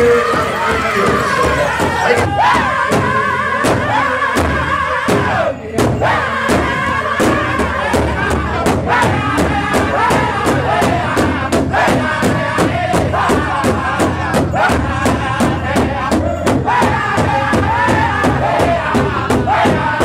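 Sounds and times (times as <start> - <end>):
large drum beating: 0.0 - 20.0
men singing loudly together: 0.0 - 20.0.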